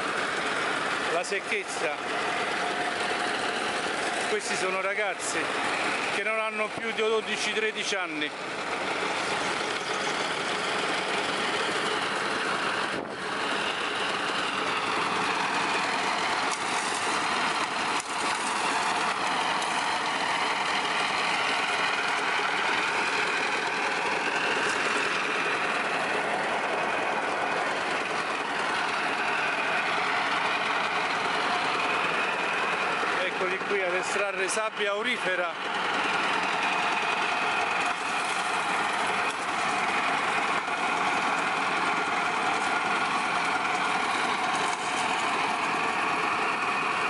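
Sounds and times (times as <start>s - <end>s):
grinding mill running: 0.0s - 47.0s.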